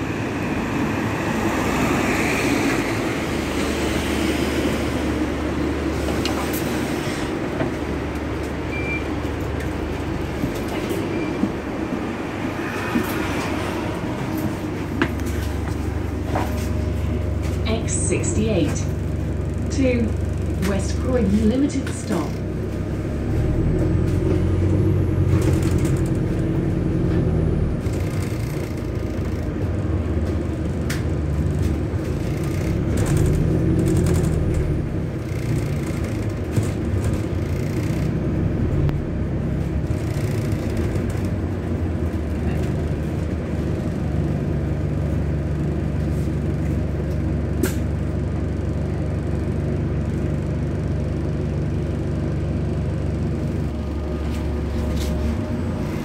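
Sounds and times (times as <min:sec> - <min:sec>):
bus engine humming: 0:00.0 - 0:56.0
road noise: 0:00.0 - 0:56.0
sharp clicks and rattles: 0:32.1 - 0:38.1.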